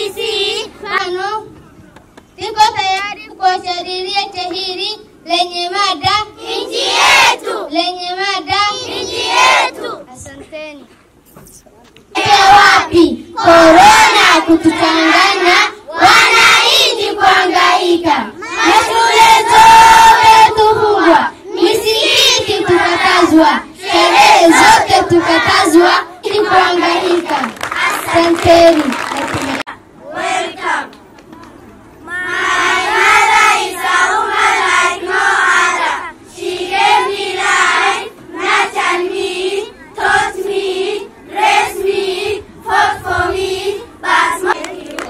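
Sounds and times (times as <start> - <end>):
children singing in chorus: 12.2 - 30.9, 32.1 - 45.0.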